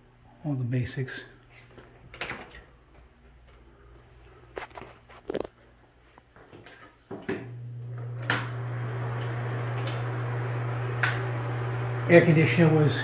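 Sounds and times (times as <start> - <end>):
fan motor humming: 7.5 - 13.0
fan motor switch click: 11.0 - 11.3.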